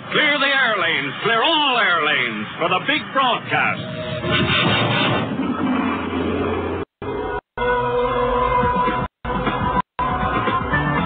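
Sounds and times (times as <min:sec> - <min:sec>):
loud noisy roar: 0:03.7 - 0:07.4.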